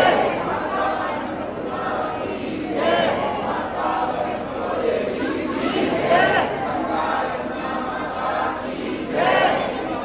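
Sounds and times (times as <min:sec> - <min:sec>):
crowd shouting and chanting: 0:00.0 - 0:10.0.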